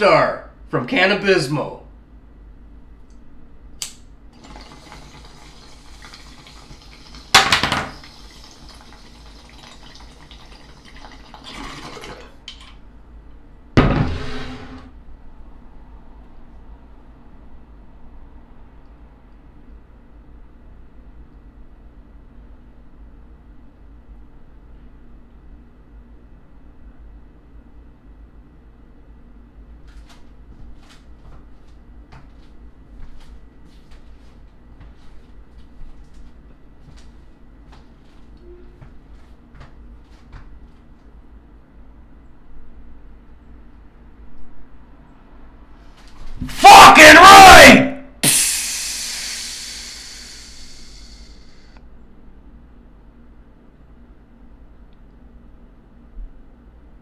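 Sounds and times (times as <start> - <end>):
water bubbling in a glass bong: 4.4 - 7.3, 8.0 - 12.4
loud sudden sounds: 46.4 - 51.6.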